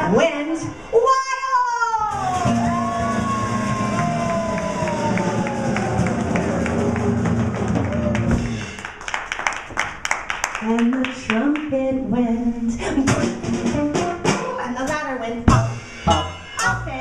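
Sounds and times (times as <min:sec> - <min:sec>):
audience clapping along: 0:03.2 - 0:11.7.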